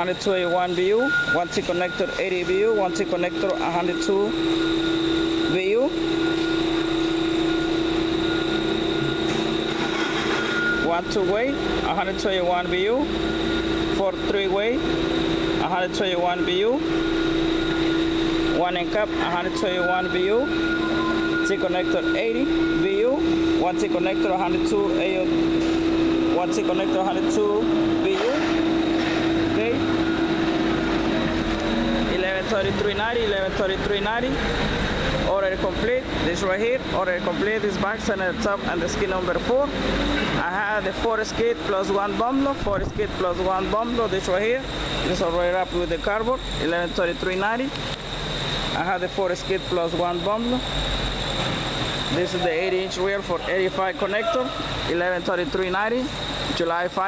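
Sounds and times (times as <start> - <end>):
high steady whine: 0.0 - 57.0
machinery drone: 0.0 - 57.0
mechanical low hum: 0.0 - 57.0.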